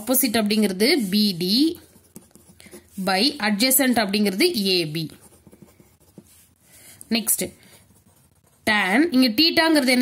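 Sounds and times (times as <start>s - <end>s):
pen writing on paper: 1.8s - 2.9s.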